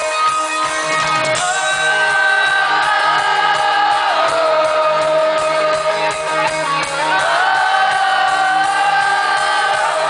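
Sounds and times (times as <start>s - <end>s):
rock band playing live: 0.0s - 10.0s
crowd singing together: 1.4s - 10.0s.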